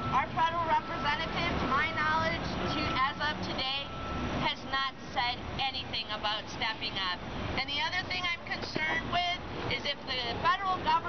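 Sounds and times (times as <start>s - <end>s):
low rumble of street traffic: 0.0s - 11.0s
voices talking: 0.0s - 11.0s.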